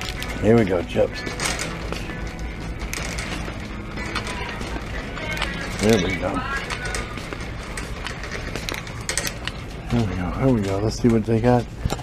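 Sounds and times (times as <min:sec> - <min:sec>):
cart basket rattling: 0:00.0 - 0:12.0
shopping cart rolling: 0:00.0 - 0:12.0.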